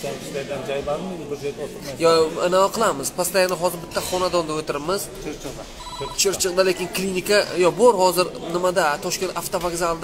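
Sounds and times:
short electronic beep: 0:05.8 - 0:06.4.

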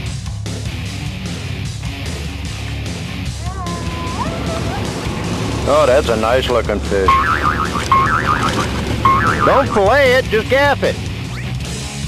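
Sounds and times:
warbling tone phrase: 0:07.1 - 0:10.0.

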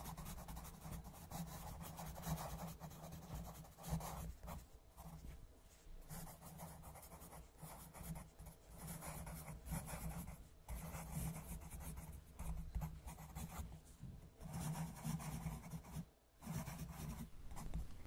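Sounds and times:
pencil scratching on paper: 0:00.0 - 0:05.3, 0:06.0 - 0:13.8, 0:14.4 - 0:18.0.

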